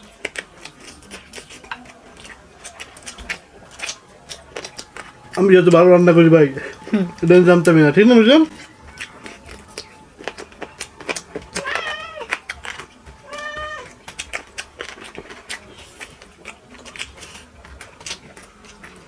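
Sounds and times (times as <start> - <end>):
people chewing and lip-smacking: 0.0 - 19.0.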